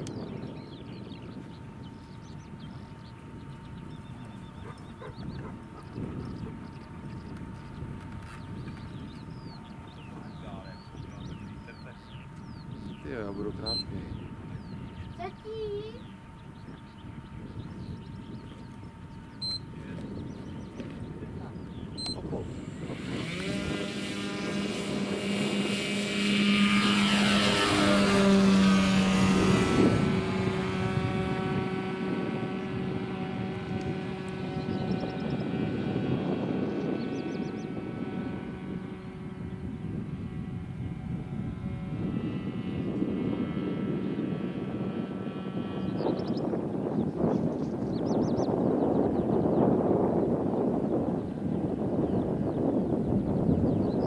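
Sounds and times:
electric model plane motor whine: 0:00.0 - 0:54.0.

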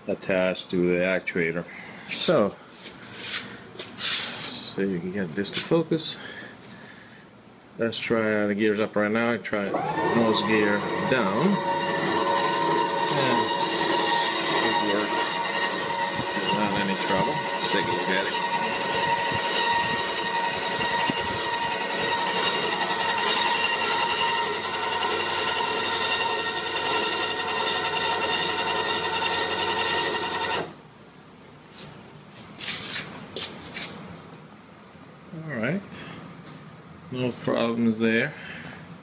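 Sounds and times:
electric motor whine: 0:09.7 - 0:30.8.

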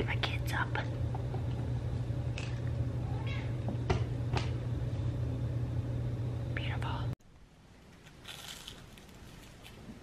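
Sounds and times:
low hum: 0:00.0 - 0:07.8
cat meowing: 0:03.0 - 0:03.6.

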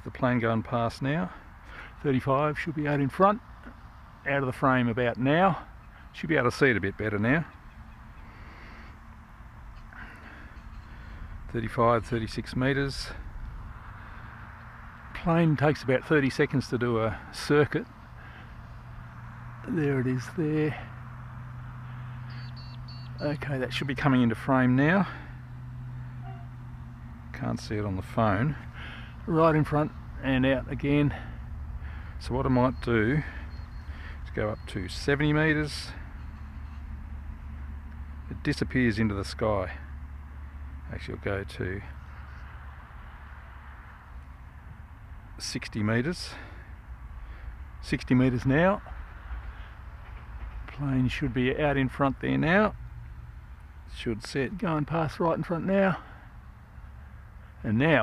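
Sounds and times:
faint outdoor rumble: 0:00.0 - 0:58.0.

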